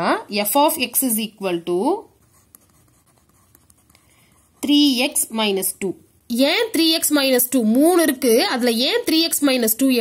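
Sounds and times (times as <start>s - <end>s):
pen scratching on paper: 2.2s - 5.0s
pen ticking on page: 2.3s - 4.7s.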